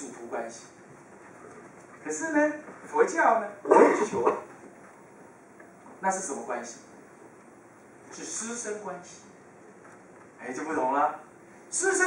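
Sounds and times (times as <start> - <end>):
man speaking into a microphone: 10.4 - 12.0.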